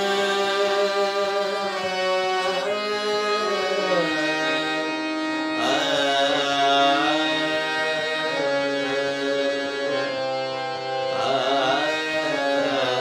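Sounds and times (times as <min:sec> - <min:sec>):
harmonium held notes: 0:00.0 - 0:13.0
man singing: 0:00.0 - 0:13.0.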